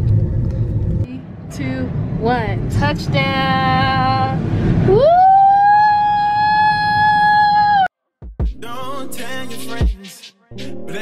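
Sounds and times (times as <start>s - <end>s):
person whooping: 4.9s - 7.9s.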